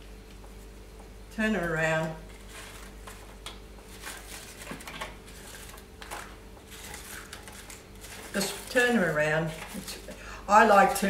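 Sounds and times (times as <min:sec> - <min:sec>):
pastries rustling on metal tray: 0:01.6 - 0:10.2.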